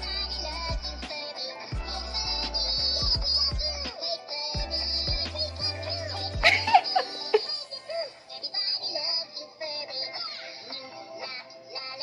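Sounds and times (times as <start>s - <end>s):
bouncy backing tune: 0.0s - 12.0s
toy singing in electronic voice: 0.0s - 12.0s.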